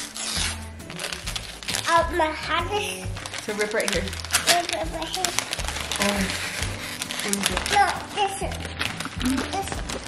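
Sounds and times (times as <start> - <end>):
background music with steady beat: 0.0 - 10.0
wrapping paper crinkling and tearing: 0.0 - 10.0.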